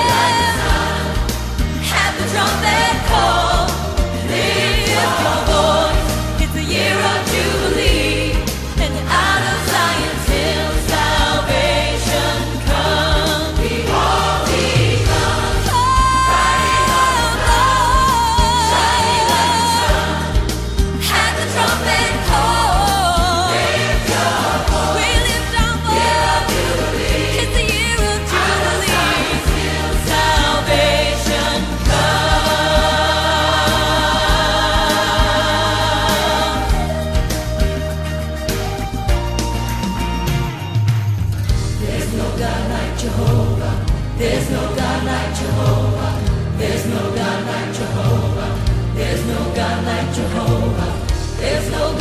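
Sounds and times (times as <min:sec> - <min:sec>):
choir singing: 0:00.0 - 0:37.4, 0:41.7 - 0:52.0
band with steady beat and bass: 0:00.0 - 0:47.0.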